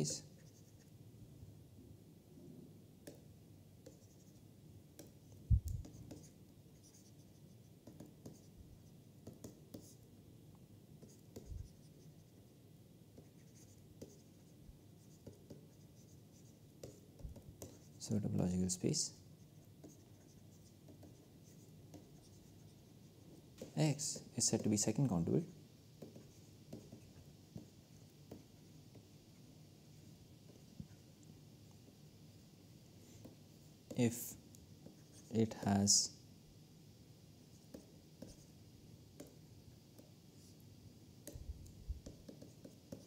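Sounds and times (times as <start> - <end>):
stylus scratching on tablet: 0.0 - 0.9, 3.8 - 4.4, 5.0 - 10.0, 11.0 - 12.6, 13.2 - 25.0, 26.0 - 31.1, 37.5 - 38.6, 41.3 - 43.0.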